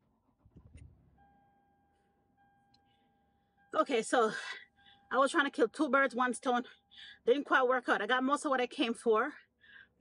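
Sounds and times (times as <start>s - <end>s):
faint steady tone: 0.0s - 10.0s.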